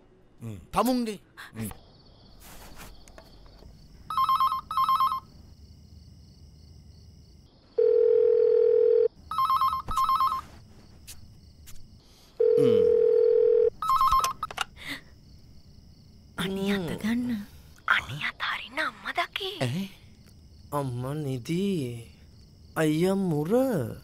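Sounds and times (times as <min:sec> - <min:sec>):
telephone ringing: 0:04.1 - 0:05.3, 0:07.8 - 0:10.5, 0:12.4 - 0:14.5.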